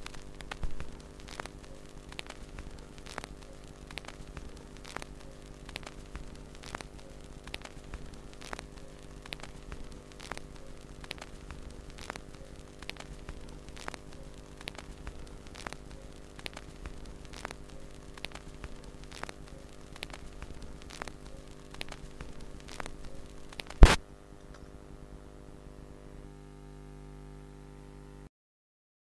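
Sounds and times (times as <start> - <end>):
sharp record click: 0.0 - 24.6
mains hum: 0.0 - 28.3
vinyl surface hiss and crackle: 0.0 - 28.3.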